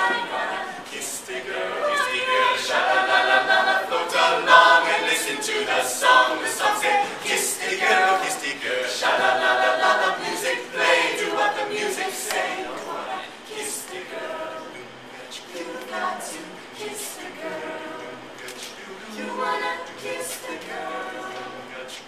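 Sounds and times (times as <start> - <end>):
a cappella group singing: 0.0 - 22.0.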